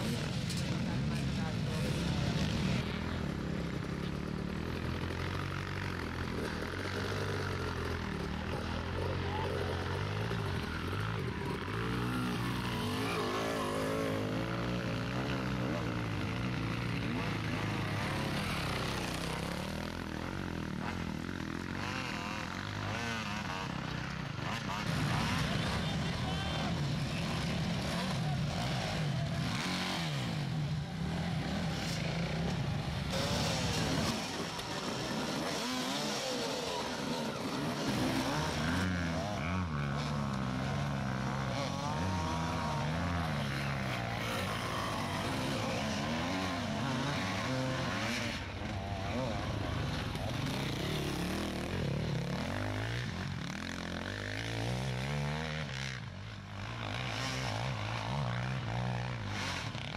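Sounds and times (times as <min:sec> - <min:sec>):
dirt bike engines revving: 0:00.0 - 0:59.9.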